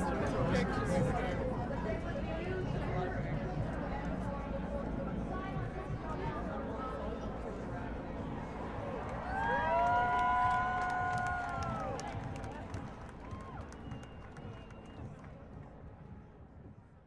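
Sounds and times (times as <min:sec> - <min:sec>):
hubbub of crowd voices: 0:00.0 - 0:17.0.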